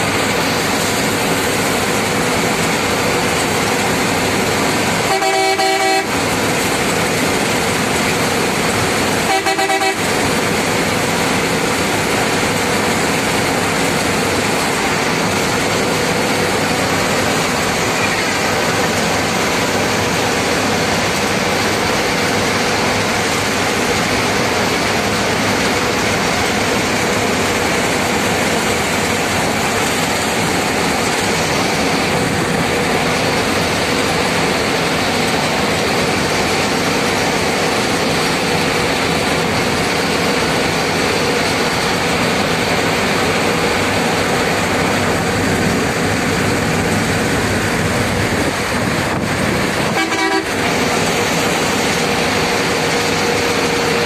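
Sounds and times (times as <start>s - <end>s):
vehicle driving on highway: 0.0s - 54.0s
car horn honks: 5.1s - 6.1s, 9.3s - 10.0s, 49.9s - 50.5s.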